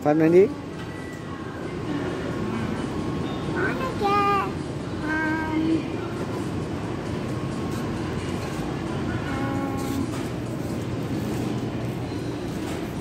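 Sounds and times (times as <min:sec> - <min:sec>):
supermarket background hum: 0:00.0 - 0:13.0.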